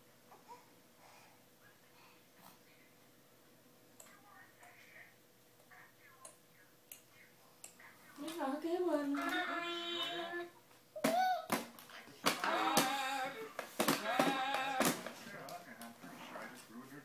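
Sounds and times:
baby squealing and babbling: 0:11.0 - 0:11.5
hands slapping plastic toy table: 0:11.0 - 0:15.6.

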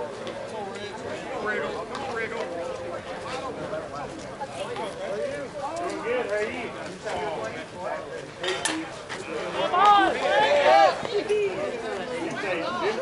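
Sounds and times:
players calling out and shouting: 0:00.5 - 0:13.0.

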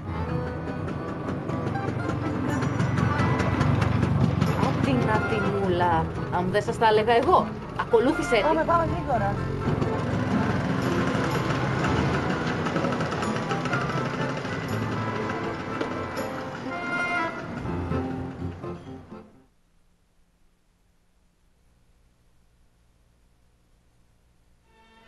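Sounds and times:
small motorbike engine: 0:00.0 - 0:05.5, 0:08.8 - 0:17.8
film music: 0:00.0 - 0:19.5
voices: 0:02.5 - 0:09.5.

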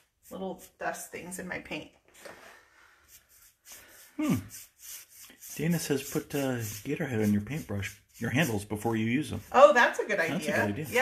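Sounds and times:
paintbrush stroking wet paint: 0:00.0 - 0:02.3, 0:03.0 - 0:11.0.

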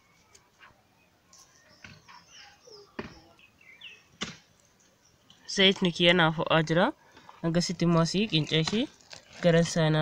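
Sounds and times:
faint bird chirps: 0:00.0 - 0:05.4
sharp knocks: 0:04.2 - 0:04.5.

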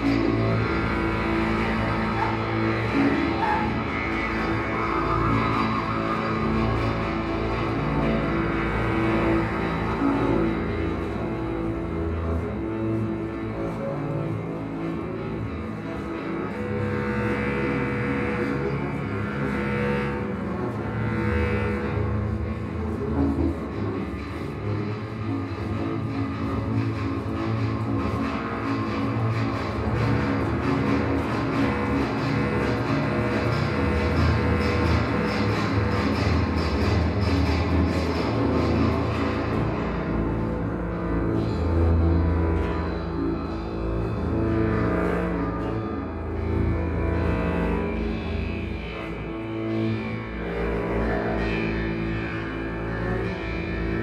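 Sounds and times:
bass clarinet: 0:00.0 - 0:54.0
bowed double bass: 0:00.0 - 0:54.0
harp: 0:00.0 - 0:54.0.

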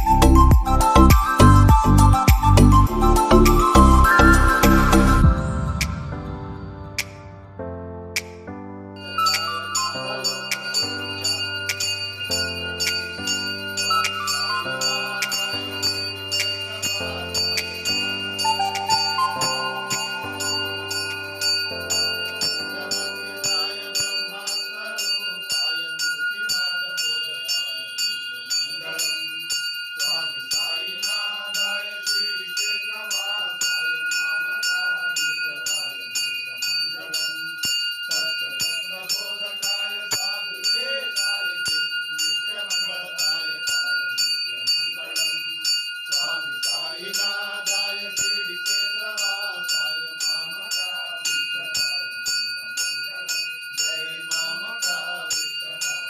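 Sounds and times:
temple bell ringing: 0:01.2 - 0:07.2, 0:09.0 - 0:56.0
voices chanting: 0:09.2 - 0:52.1, 0:52.8 - 0:56.0.

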